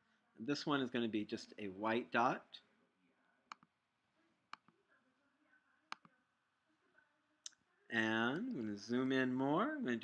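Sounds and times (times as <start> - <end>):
computer mouse clicks: 3.5 - 3.7, 5.9 - 6.1.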